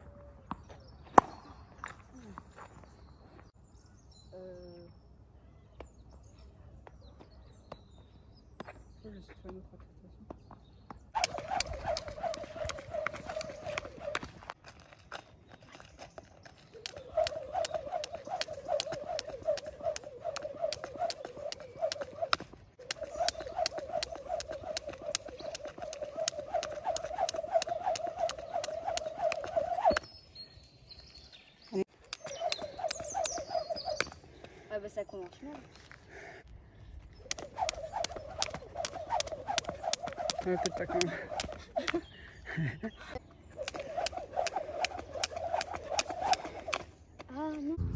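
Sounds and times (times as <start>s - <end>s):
jump rope whirring and slapping pavement: 11.1s - 30.1s, 32.0s - 34.6s, 37.2s - 42.1s, 43.5s - 47.4s.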